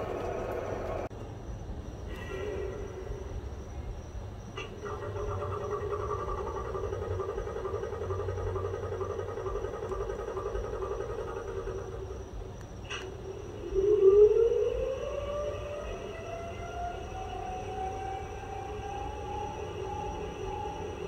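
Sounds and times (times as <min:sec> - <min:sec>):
model locomotive hum: 0:00.0 - 0:01.2, 0:04.8 - 0:21.0
rising motor whine: 0:13.3 - 0:21.0.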